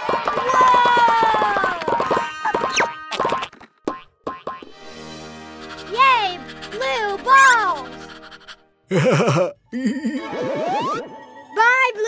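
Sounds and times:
cartoon springy boings: 1.8s - 4.7s
light background music: 4.7s - 12.0s.

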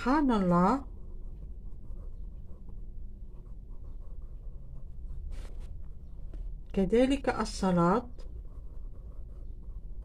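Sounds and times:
low steady hum: 0.0s - 10.0s
pencil scratching on paper: 0.0s - 10.0s.

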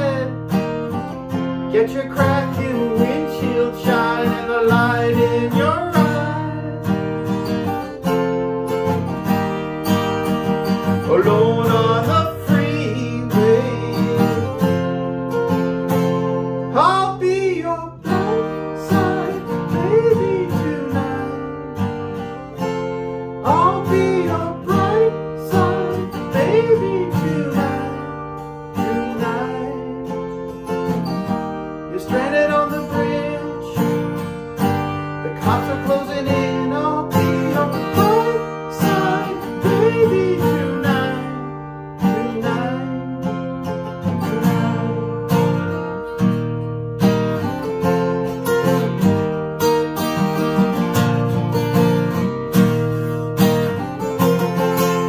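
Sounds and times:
man singing: 0.0s - 1.0s, 1.6s - 7.2s, 10.9s - 15.1s, 16.6s - 21.9s, 23.4s - 34.4s, 35.1s - 45.9s
acoustic guitar strumming: 0.0s - 55.0s.

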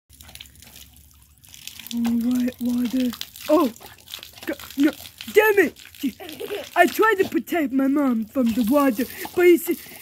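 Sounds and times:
hose water spattering on concrete: 0.1s - 10.0s
small water drips: 0.1s - 10.0s.

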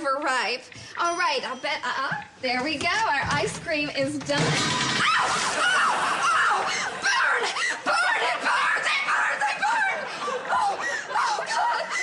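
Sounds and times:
studio audience laughing: 5.3s - 8.4s.

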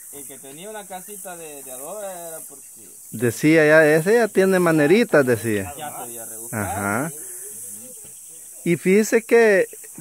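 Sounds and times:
insects hissing: 0.0s - 10.0s.

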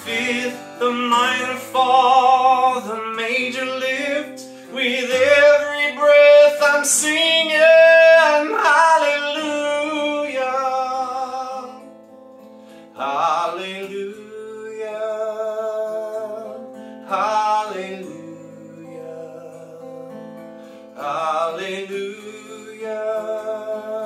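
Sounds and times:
man singing: 0.0s - 12.0s, 12.9s - 24.0s
strummed acoustic guitar: 0.0s - 24.0s.

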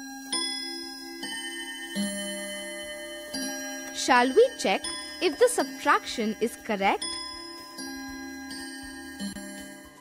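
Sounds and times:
chime-like jingle: 0.0s - 10.0s.

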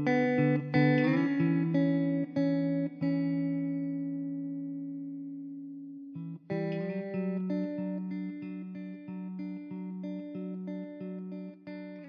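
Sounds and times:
guitar plucking notes and chords: 0.0s - 12.0s.

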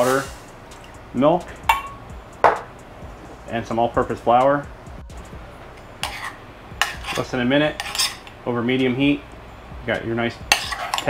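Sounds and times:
metal spoon scraping saucepan: 6.0s - 9.0s, 10.4s - 11.0s.

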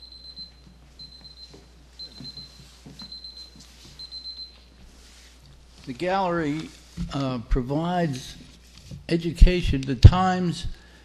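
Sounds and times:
electronic alarm beeping: 0.0s - 4.6s
faint shuffling and knocks: 0.2s - 9.1s.

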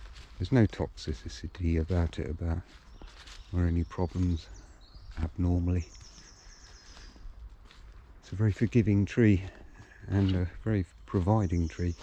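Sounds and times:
soft footsteps on woodland floor: 0.0s - 12.0s
faint high bird trill: 2.8s - 7.4s.

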